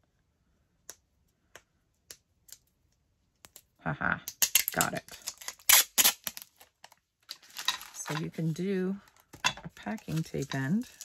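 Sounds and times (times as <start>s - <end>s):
packing tape peeling off roll: 4.4s - 8.0s.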